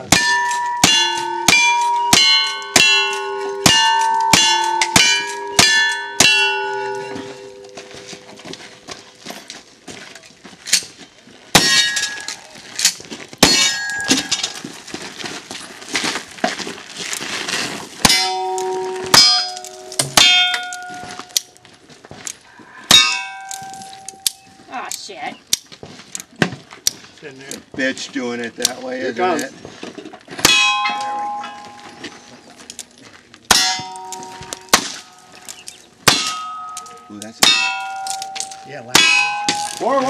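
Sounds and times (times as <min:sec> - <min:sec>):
steel target ringing: 0:00.0 - 0:08.3, 0:11.6 - 0:12.5, 0:13.4 - 0:14.6, 0:18.0 - 0:21.4, 0:22.9 - 0:24.6, 0:30.4 - 0:32.3, 0:33.5 - 0:35.4, 0:36.0 - 0:40.0.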